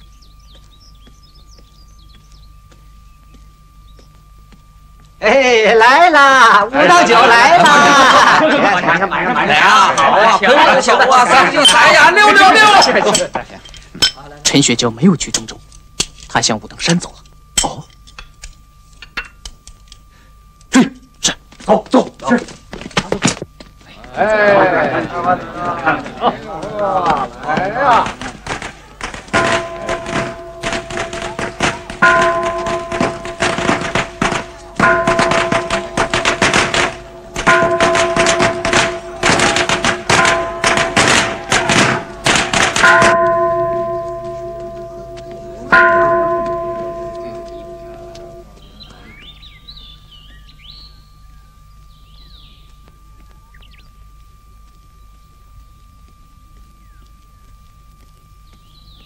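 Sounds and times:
faint high chirps: 0:00.0 - 0:05.2, 0:46.5 - 0:59.0
faint steady tone: 0:00.0 - 0:22.7, 0:28.8 - 0:59.0
rapid percussive strikes: 0:27.9 - 0:48.4
deep bell or gong strikes: 0:29.3 - 0:48.7.

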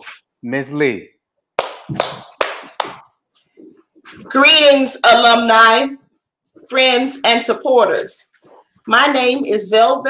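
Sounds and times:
person clapping hands: 0:01.6 - 0:03.2.

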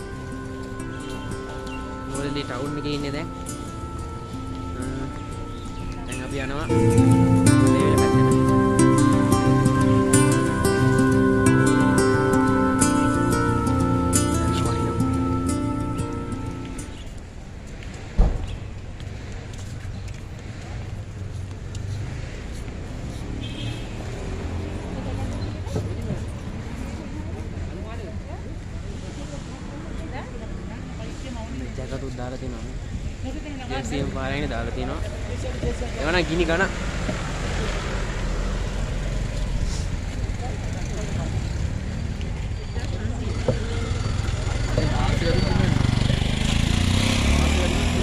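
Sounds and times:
brief high-pitched tone: 0:00.0 - 0:17.1
faint voices of passers-by: 0:00.0 - 0:48.0
road traffic rumble: 0:00.0 - 0:48.0.

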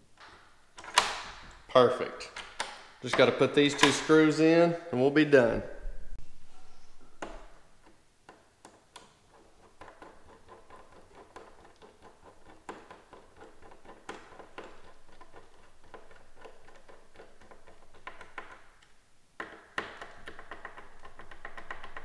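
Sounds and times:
screwdriver turning screw: 0:07.2 - 0:22.0.

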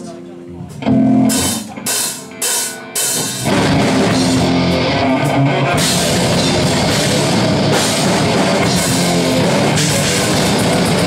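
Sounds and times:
electric guitar chord: 0:03.5 - 0:11.0.

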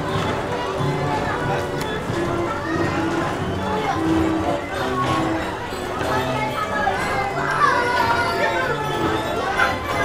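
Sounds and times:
carousel music: 0:00.0 - 0:10.0
children calling and chattering: 0:00.0 - 0:10.0.

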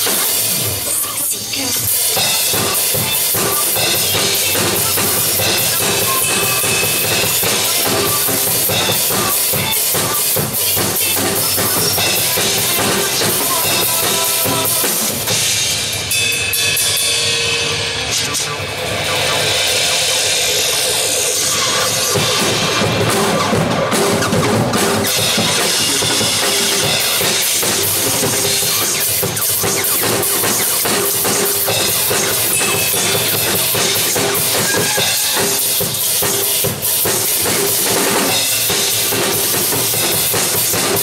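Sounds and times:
backing track: 0:00.0 - 0:41.0
drum kit playing: 0:00.0 - 0:41.0
cymbals ringing: 0:01.6 - 0:41.0.

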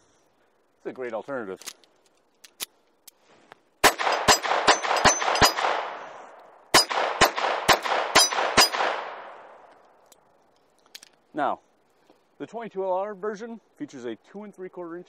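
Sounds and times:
gunshot echo: 0:03.8 - 0:09.6
pistol shots: 0:03.8 - 0:09.6.

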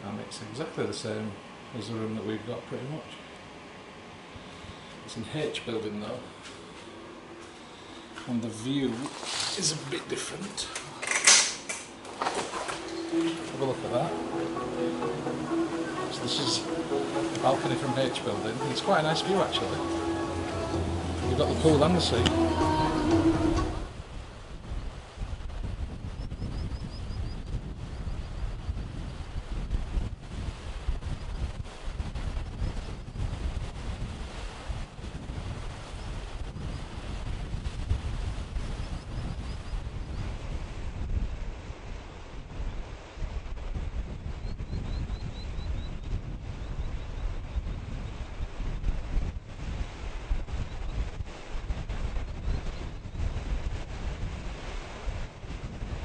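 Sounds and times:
outdoor hiss: 0:00.0 - 0:25.1
wind buffeting microphone: 0:19.2 - 0:56.0.

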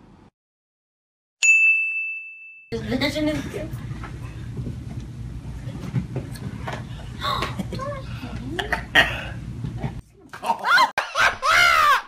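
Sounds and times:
bell-like ding: 0:01.4 - 0:02.8.

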